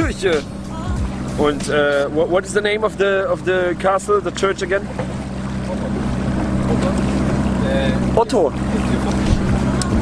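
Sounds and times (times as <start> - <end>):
motorboat engine humming: 0.0 - 10.0
water rushing: 0.0 - 10.0
wind on microphone: 8.6 - 10.0.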